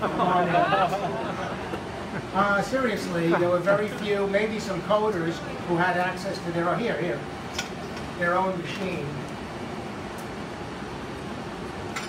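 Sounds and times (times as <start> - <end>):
machines and cooling fans whirring: 0.0 - 12.0.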